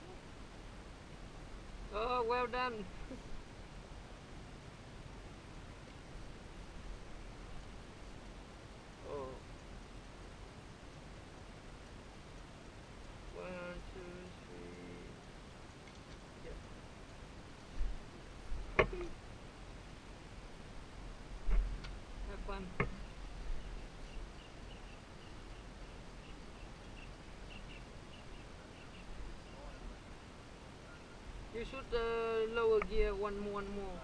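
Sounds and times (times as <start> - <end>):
faint high chirps: 22.8 - 31.3.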